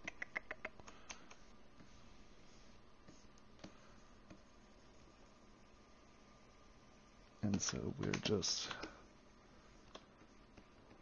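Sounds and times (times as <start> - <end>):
light clicks of computer controls: 7.2 - 9.0, 9.8 - 11.0.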